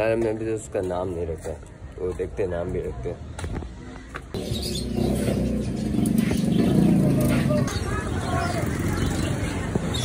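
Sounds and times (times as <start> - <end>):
vehicle engine passing: 4.4 - 10.0.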